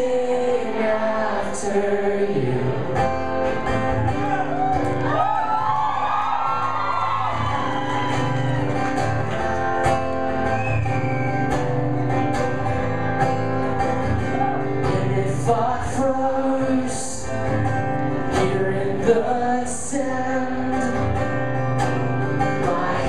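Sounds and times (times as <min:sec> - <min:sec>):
acoustic guitar strumming: 0:00.0 - 0:23.0.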